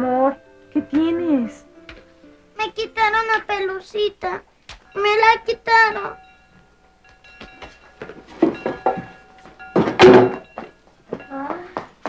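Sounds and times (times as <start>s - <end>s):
school bell ringing: 2.6s - 11.9s
scattered knocks: 4.7s - 12.0s.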